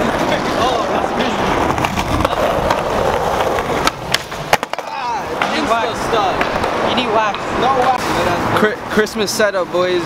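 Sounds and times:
skateboard clacking on ground: 0:00.0 - 0:08.2
skateboard wheels rolling on asphalt: 0:00.0 - 0:10.0.

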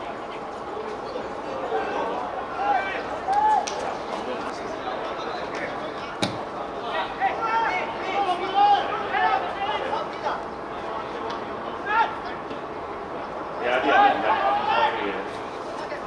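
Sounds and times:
men shouting: 0:13.6 - 0:15.2.

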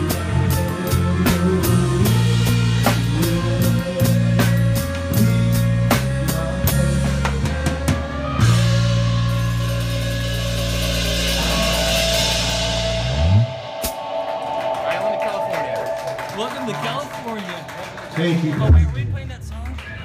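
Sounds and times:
held bass note: 0:00.0 - 0:17.3
drum strokes: 0:00.0 - 0:19.2.

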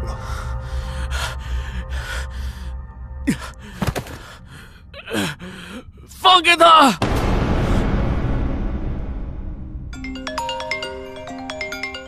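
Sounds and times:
person breathing heavily and gasping: 0:00.0 - 0:06.1
low music drone: 0:00.0 - 0:06.2.

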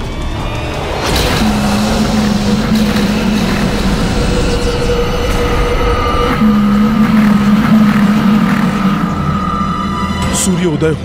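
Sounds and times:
loud low rumble: 0:00.0 - 0:11.0
sustained droning tones: 0:00.0 - 0:11.0.

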